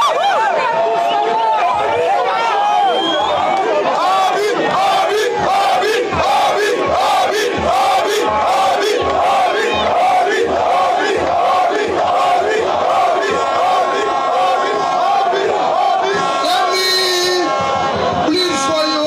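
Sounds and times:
stadium crowd chanting: 0.0 - 19.0.

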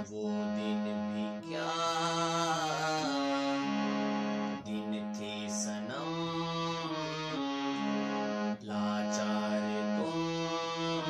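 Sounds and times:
harmonium sustained notes: 0.0 - 11.0.

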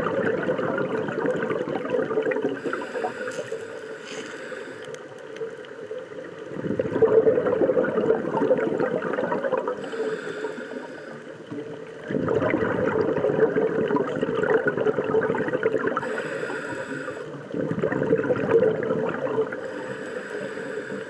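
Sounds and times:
underwater exhaled bubbles: 0.0 - 21.0.

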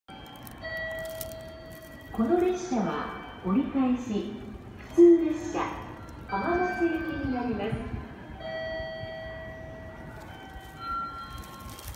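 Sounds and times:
public address chime: 0.1 - 11.9
station platform rumble: 0.1 - 11.9.

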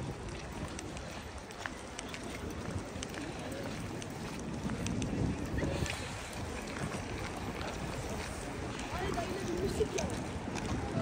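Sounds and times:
faint voices of passers-by: 0.0 - 11.0
footsteps on icy pavement: 0.0 - 11.0
low steady street rumble: 0.0 - 11.0.

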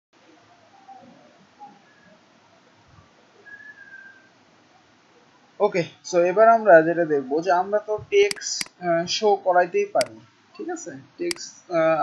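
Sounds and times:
faint room hiss: 0.2 - 12.0
high whistle-like tone: 3.4 - 4.3.

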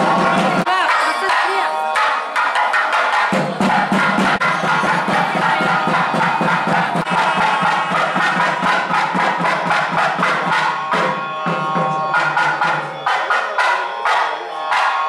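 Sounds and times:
drum beaten rapidly: 0.0 - 15.0.

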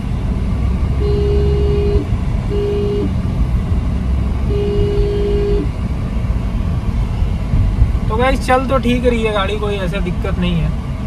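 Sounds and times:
road and engine rumble in car: 0.0 - 11.0
vehicle horn honking: 1.0 - 3.1, 4.4 - 5.7.

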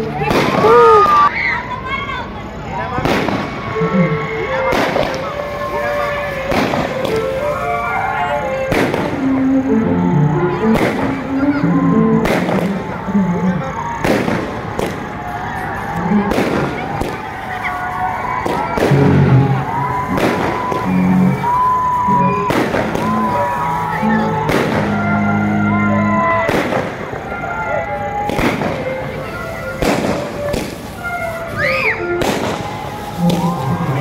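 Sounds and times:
fireworks bursting with loud bangs: 0.0 - 1.3, 2.4 - 10.0, 10.6 - 34.0.

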